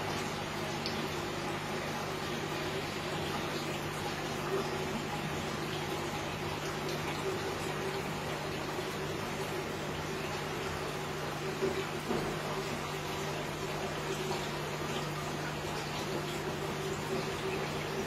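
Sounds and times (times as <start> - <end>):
low pump hum: 0.0 - 18.0
trickle of moving water: 0.0 - 18.0.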